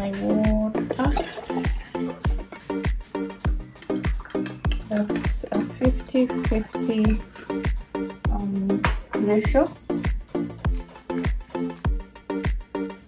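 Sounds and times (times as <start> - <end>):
music with steady drum beat: 0.0 - 13.0.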